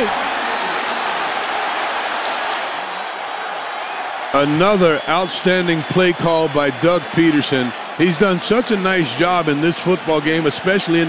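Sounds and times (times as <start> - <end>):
stadium crowd cheering over radio: 0.0 - 11.0.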